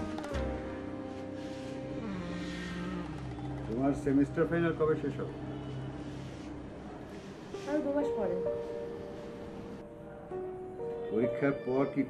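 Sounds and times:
sustained background music chords: 0.0 - 12.0.

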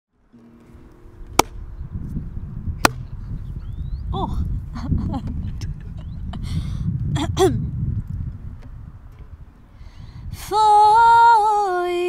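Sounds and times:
wind rumbling on microphone: 0.6 - 12.0.

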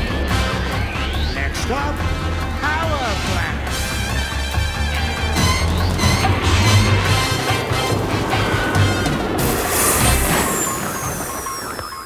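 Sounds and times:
bouncy background music: 0.0 - 11.3
cartoon rocket thrust rumbling: 3.8 - 12.0
slow falling whistle: 9.5 - 12.0.

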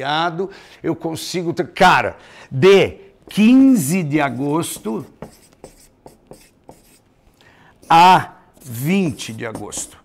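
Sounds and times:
marker writing on paper: 3.2 - 7.2, 7.8 - 10.0.

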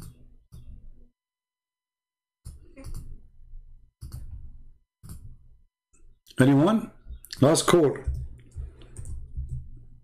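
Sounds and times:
computer mouse and keyboard clicks: 2.4 - 3.3, 4.0 - 5.4, 7.1 - 10.0.

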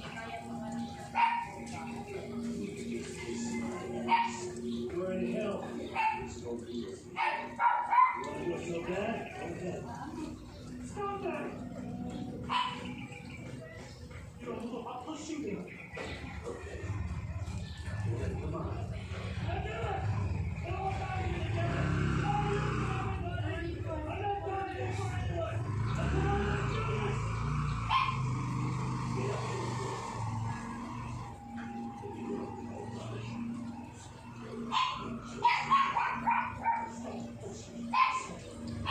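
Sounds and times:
dog barking: 1.1 - 1.7, 4.0 - 4.6, 5.9 - 6.5, 7.2 - 8.4, 12.4 - 13.0, 27.9 - 28.5, 34.6 - 37.3, 37.9 - 38.9.

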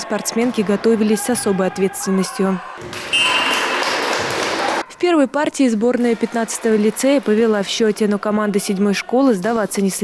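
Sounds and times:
referee whistle blast: 3.1 - 3.7.

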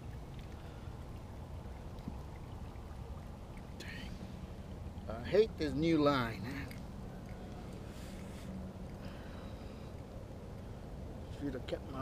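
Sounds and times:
water and wind rumble: 0.0 - 12.0.

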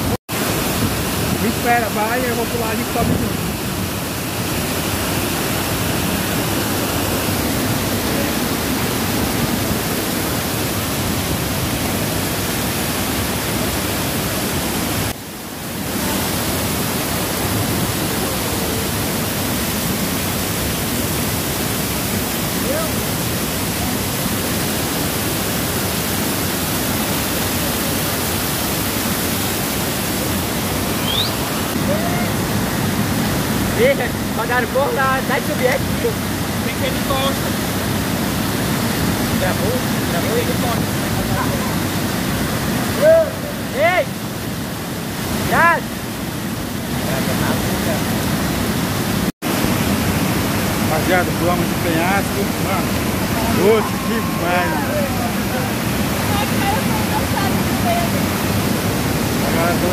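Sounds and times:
waterfall roaring: 0.0 - 59.9.

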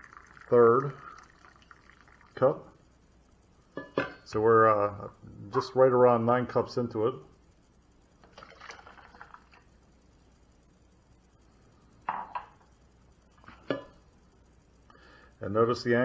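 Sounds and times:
water pouring into pitcher: 0.0 - 2.8, 8.2 - 9.6
mug knocking on stone countertop: 12.1 - 12.6.

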